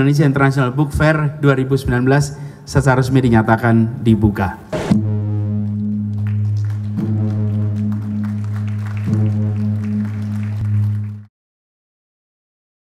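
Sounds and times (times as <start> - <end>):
gong ringing: 4.8 - 5.8.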